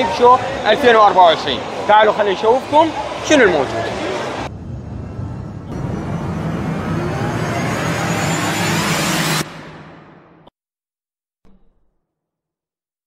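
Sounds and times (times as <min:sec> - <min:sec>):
whooshing riser: 0:04.3 - 0:10.5.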